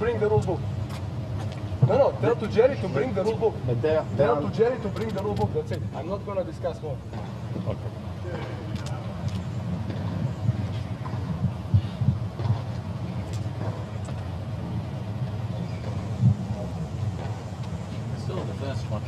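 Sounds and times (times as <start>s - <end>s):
steady low rumble: 0.0s - 19.0s
faint indistinct voices: 2.6s - 14.4s.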